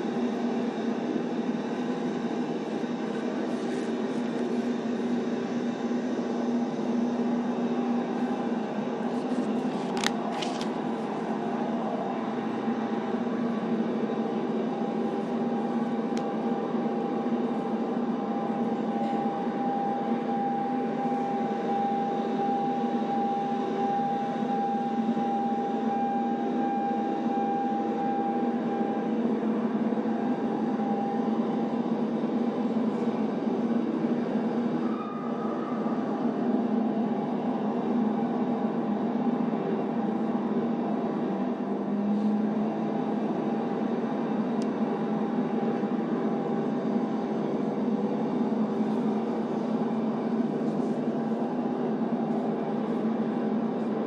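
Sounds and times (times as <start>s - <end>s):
faint steady tone: 11.0s - 33.8s.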